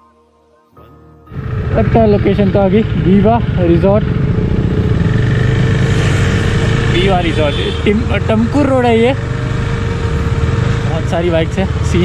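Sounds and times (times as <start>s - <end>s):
motorcycle engine cruising: 1.3s - 12.0s.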